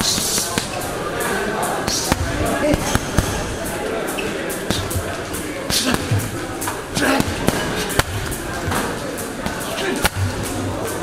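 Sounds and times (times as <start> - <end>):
gym voices: 0.0 - 11.0.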